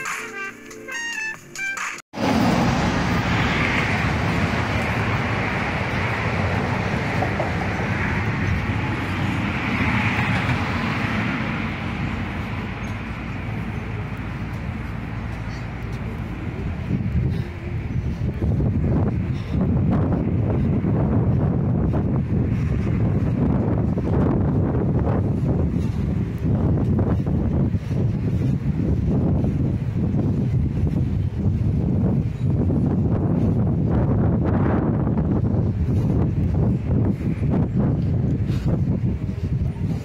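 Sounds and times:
wind buffeting microphone: 2.2 - 40.0.

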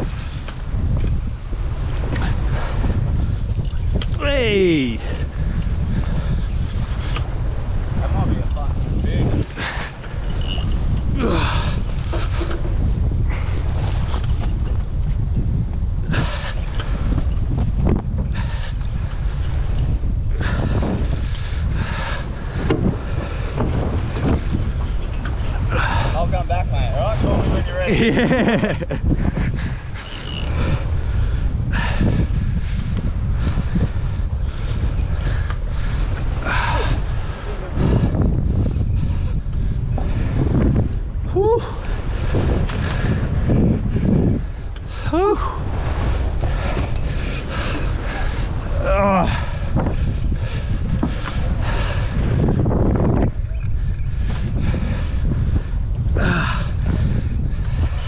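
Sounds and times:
sea washing against hull: 0.0 - 58.0
wind buffeting microphone: 0.0 - 58.0.

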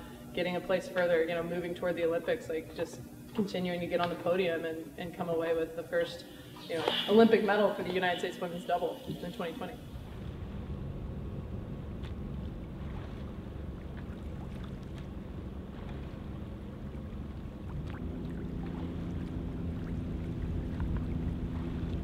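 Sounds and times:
motorboat engine humming: 0.0 - 22.0
water noise: 6.7 - 22.0.

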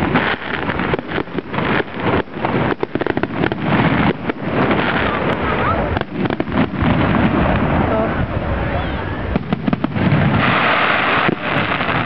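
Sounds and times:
firework shells bursting: 0.0 - 7.8, 9.3 - 12.0
crackling hiss: 0.0 - 12.0.

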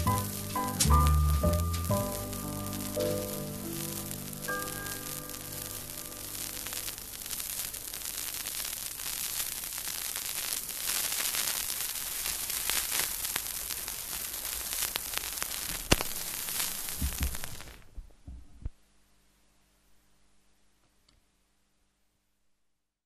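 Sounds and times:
record surface hiss and crackle: 0.0 - 23.0.

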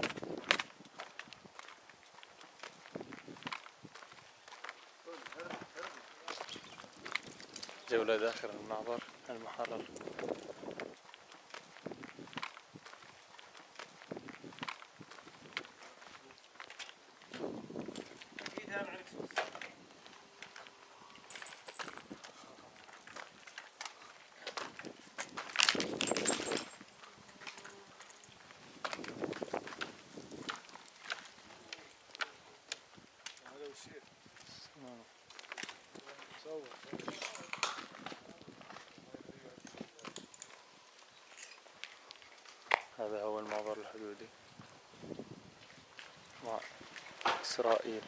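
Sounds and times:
footsteps: 0.0 - 34.6, 35.2 - 48.0.

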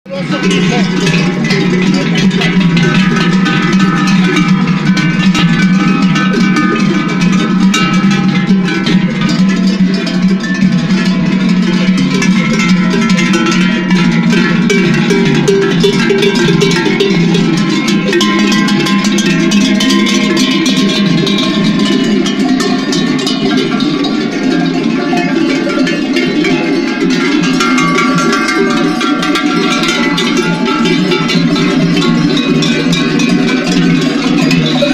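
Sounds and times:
sheep bells clanking: 0.1 - 34.9.

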